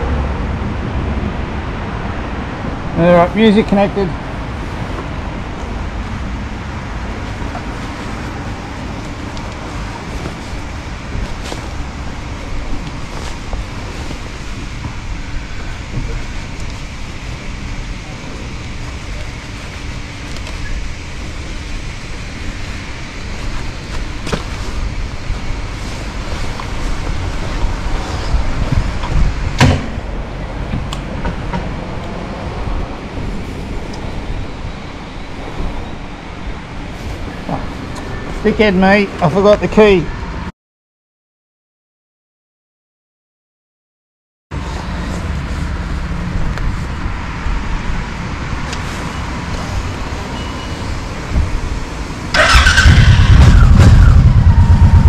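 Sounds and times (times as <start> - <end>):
road traffic rumble: 0.0 - 40.5, 44.5 - 55.0
sharp knock: 29.6 - 30.0.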